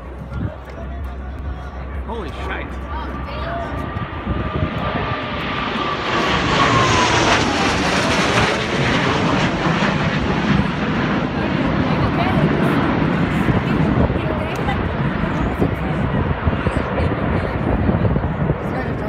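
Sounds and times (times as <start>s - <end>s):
jets flying overhead: 0.0s - 19.0s.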